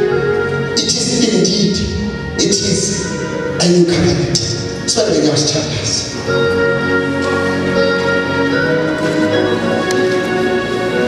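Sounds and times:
sustained keyboard chords: 0.0 - 11.0.

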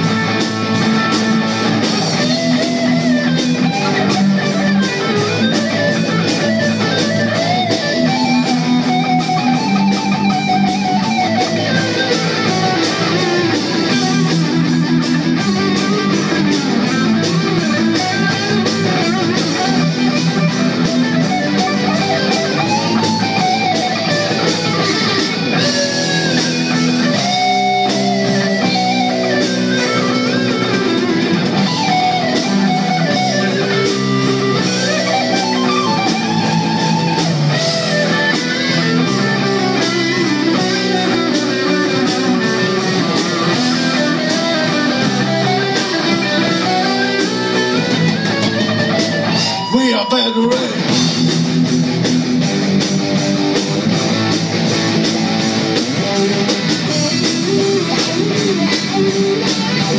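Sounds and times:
electric bass: 0.0 - 59.9
electric guitar line: 0.0 - 59.9
steady drum beat: 0.0 - 59.9.

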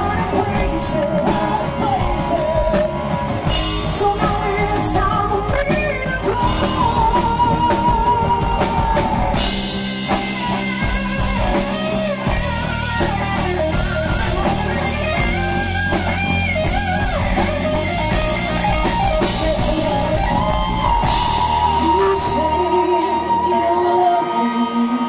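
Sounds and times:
woman singing: 0.0 - 9.7, 19.2 - 25.0
rock band playing: 0.0 - 25.0.

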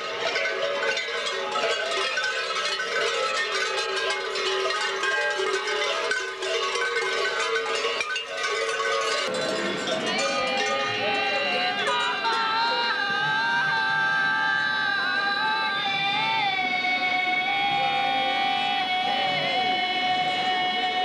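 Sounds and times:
large bells clanging: 0.0 - 13.4.

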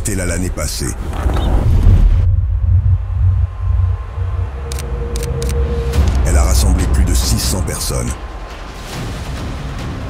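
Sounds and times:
deep steady rumble: 1.1 - 8.3.

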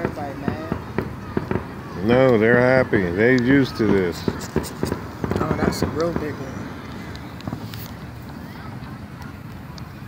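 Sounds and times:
fireworks popping: 0.0 - 10.0.

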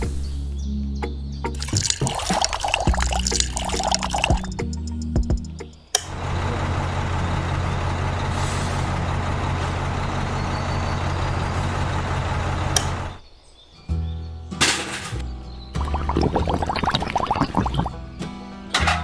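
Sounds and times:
wet cement dripping and crackling: 1.6 - 4.7.

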